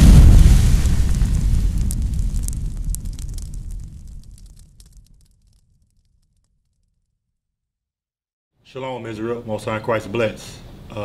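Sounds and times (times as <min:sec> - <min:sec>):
deep explosion boom: 0:00.0 - 0:06.1
fire crackling: 0:00.0 - 0:07.1.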